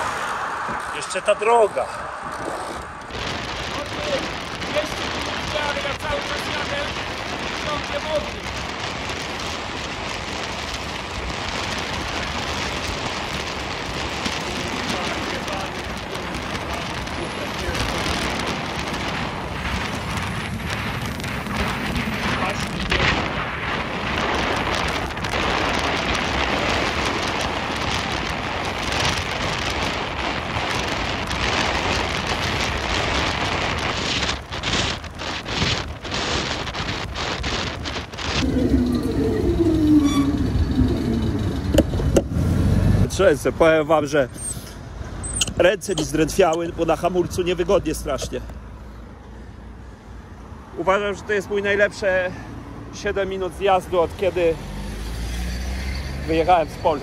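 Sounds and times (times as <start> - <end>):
motor vehicle passing close: 0.0 - 4.4, 38.2 - 43.1, 54.6 - 56.5
wind buffeting microphone: 0.0 - 50.7.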